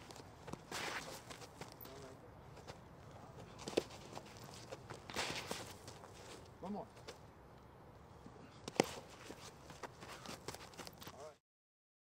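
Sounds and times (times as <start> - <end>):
cleats scuffing on dirt: 0.0 - 7.2, 8.6 - 11.4.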